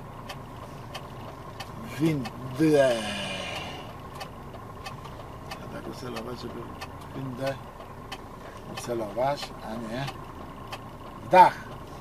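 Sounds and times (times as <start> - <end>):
truck engine humming: 0.0 - 12.0
hazard-light flasher ticking: 0.2 - 11.9.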